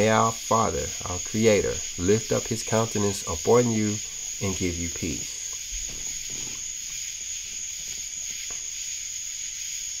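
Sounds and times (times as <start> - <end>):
high-pitched whine: 0.0 - 10.0
hiss: 0.0 - 10.0.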